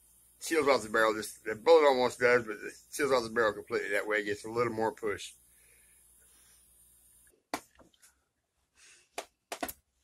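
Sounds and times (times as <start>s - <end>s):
faint steady hum: 0.0s - 9.0s.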